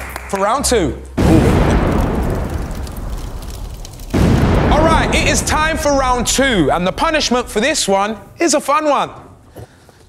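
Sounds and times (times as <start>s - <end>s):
deep explosion blast: 1.2s - 8.4s.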